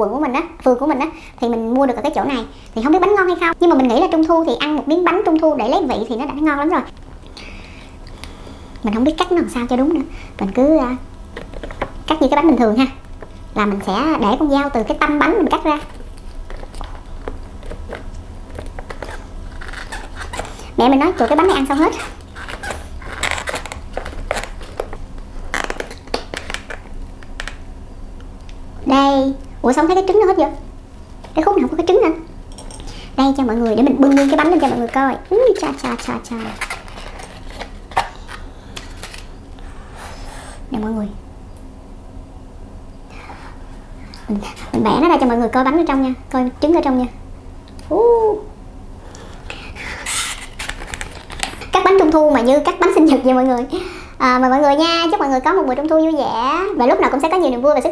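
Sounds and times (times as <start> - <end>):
mooncake crackling and rustling: 15.4 - 27.2.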